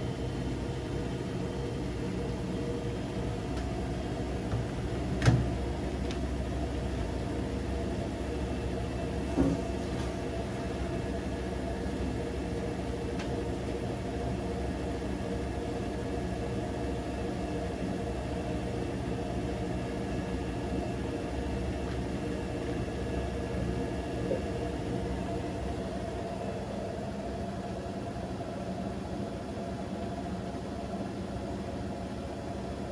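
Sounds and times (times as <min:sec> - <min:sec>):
faint motor whine: 0:00.0 - 0:32.9
washing machine spinning: 0:00.0 - 0:32.9.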